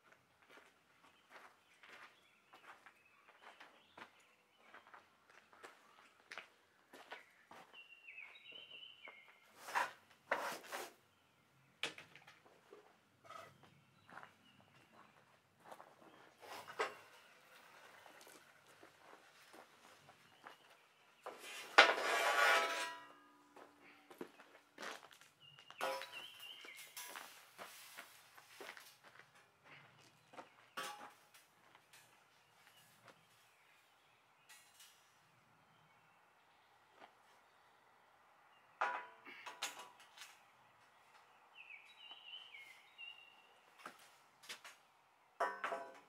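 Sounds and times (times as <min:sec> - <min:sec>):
steel knocks and scrapes: 0:16.4 - 0:18.5, 0:21.3 - 0:23.4, 0:25.8 - 0:27.4, 0:30.8 - 0:32.2, 0:38.8 - 0:40.4, 0:45.4 - 0:46.0.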